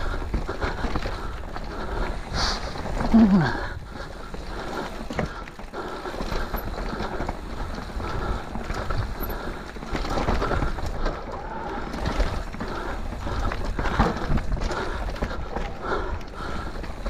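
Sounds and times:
bike knocks and rattles: 0:00.0 - 0:17.0
bike tyre noise on dirt: 0:00.0 - 0:17.0.

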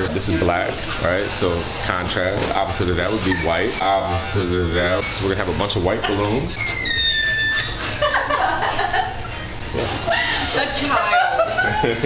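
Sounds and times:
balloon squealing as air escapes: 0:06.5 - 0:07.8
laughter: 0:07.8 - 0:12.0.

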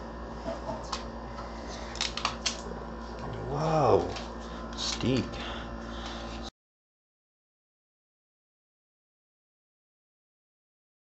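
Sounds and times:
man humming: 0:03.2 - 0:04.2.

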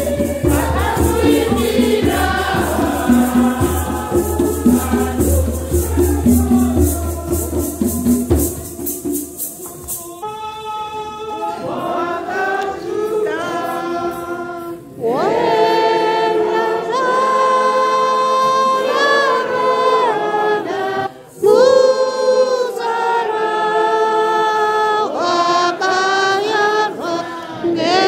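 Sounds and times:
group singing a church song: 0:00.0 - 0:28.0.

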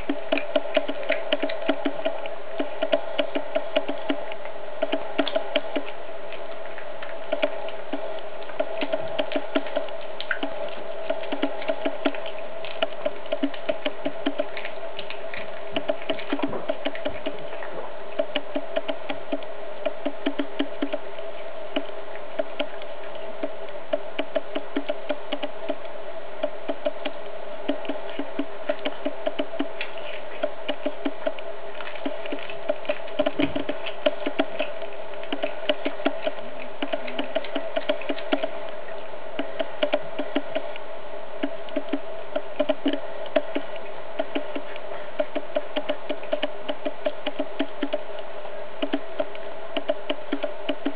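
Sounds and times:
cat chewing bones: 0:00.0 - 0:21.1, 0:26.4 - 0:38.6
steady low hum: 0:00.0 - 0:50.9.

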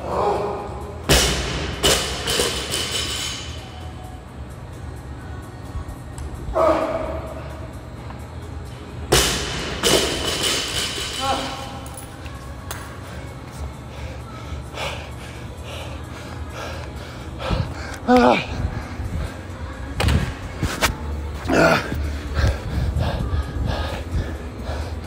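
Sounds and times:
background music: 0:00.0 - 0:25.0
man grunting: 0:18.0 - 0:18.6, 0:21.4 - 0:22.0
man shouting: 0:18.1 - 0:18.5.

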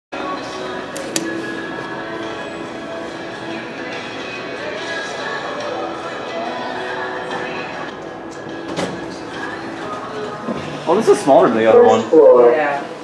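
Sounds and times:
background music with held tones: 0:00.2 - 0:13.0.

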